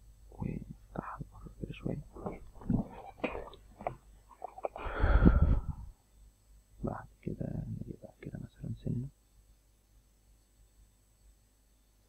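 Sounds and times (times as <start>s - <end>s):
man muttering and whispering: 0.3s - 3.5s, 6.8s - 9.1s
breath rush on microphone: 4.8s - 5.9s.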